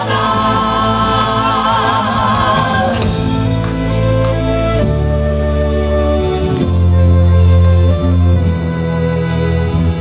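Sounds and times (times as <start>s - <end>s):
man and woman singing: 0.0s - 3.4s
musical accompaniment: 0.0s - 10.0s.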